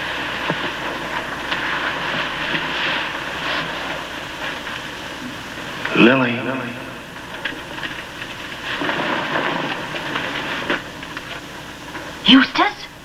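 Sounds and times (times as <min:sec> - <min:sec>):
wind and rain rushing: 0:00.0 - 0:13.0.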